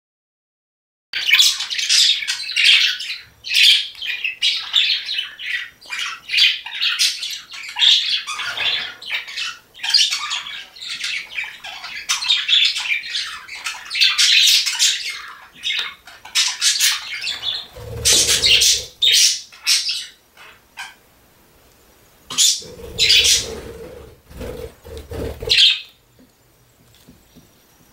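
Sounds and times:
budgerigar chattering: 16.4 - 19.8, 22.3 - 25.8.

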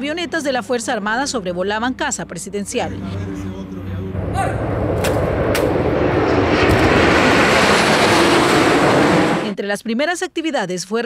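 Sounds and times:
propeller aircraft flying overhead: 0.0 - 9.6.

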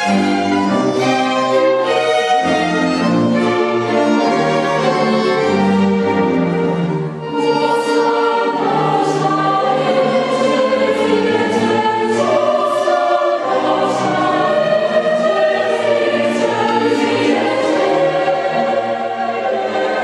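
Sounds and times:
mixed choir singing: 0.0 - 20.0
string orchestra: 0.0 - 20.0.

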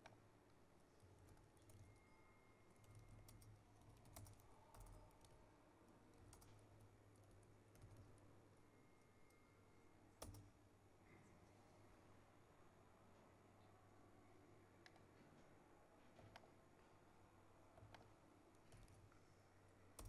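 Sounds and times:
typing on laptop keyboard: 1.0 - 8.3, 10.1 - 10.6.

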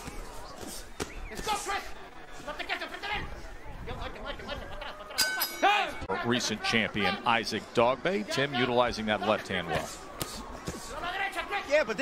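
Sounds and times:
faint voices: 0.0 - 12.0
metallic clink with ring: 5.2 - 5.7.

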